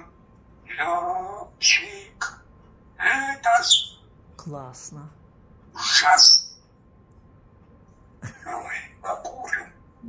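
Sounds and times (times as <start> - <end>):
parrot call: 0.0 - 2.4, 3.0 - 4.0, 5.8 - 6.6, 8.4 - 9.8.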